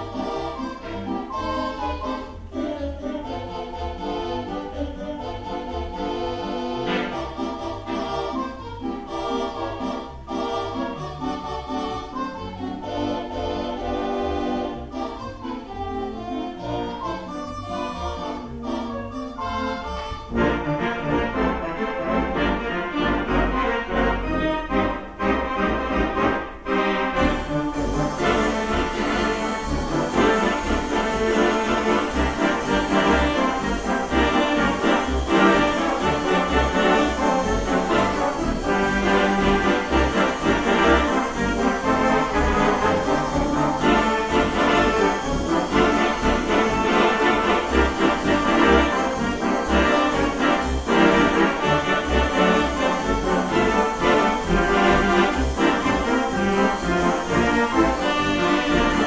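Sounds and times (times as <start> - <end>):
theatre organ playing upbeat song: 0.0 - 59.0.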